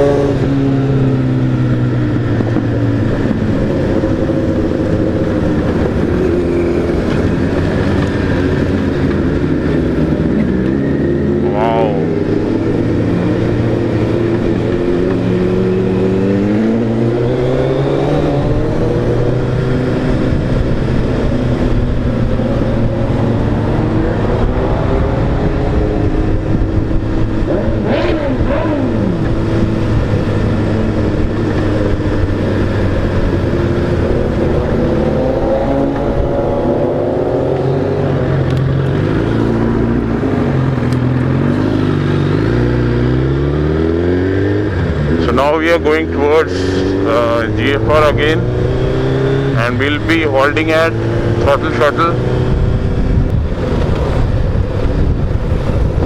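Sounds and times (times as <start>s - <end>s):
motorcycle engine revving: 0.0s - 56.0s
wind and road noise: 0.0s - 56.0s.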